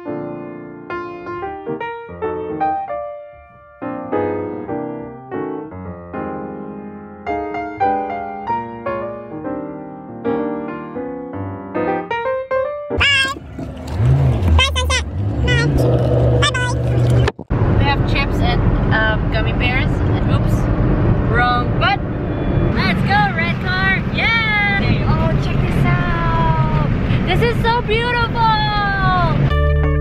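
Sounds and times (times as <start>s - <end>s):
piano tune: 0.0s - 17.3s
high-pitched voices squealing: 13.0s - 17.3s
car engine and road noise: 13.0s - 30.0s.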